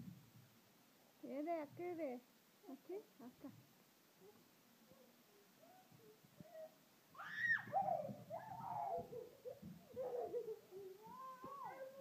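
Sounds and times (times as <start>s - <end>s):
toddler sing-song vocalizing: 7.7s - 12.0s.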